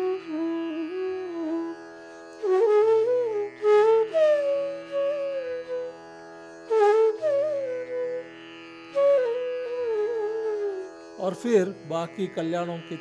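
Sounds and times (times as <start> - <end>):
bamboo flute melody: 0.0 - 11.4.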